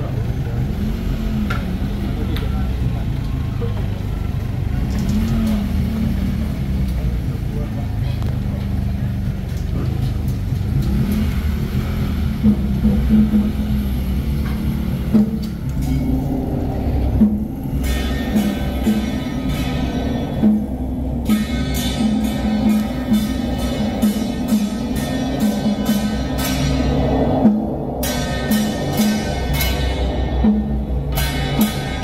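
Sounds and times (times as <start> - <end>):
low rumble: 0.0 - 32.0
people's voices: 0.0 - 32.0
vehicle engine running: 0.0 - 32.0
music: 12.2 - 32.0.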